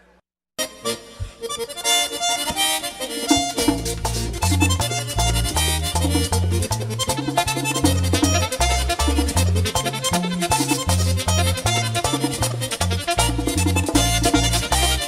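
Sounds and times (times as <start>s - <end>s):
accordion fast run: 0.6s - 15.0s
percussion strokes: 1.2s - 15.0s
low bass notes: 3.3s - 15.0s.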